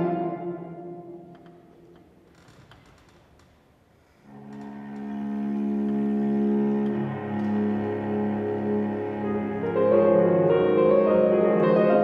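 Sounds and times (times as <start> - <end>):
cello long bowed note: 4.3 - 12.0.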